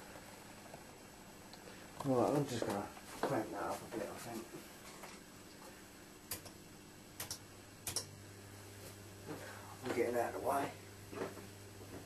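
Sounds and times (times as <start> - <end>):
low electrical hum: 0.0 - 12.0
power supply switch clicks: 6.3 - 6.6, 7.2 - 8.1.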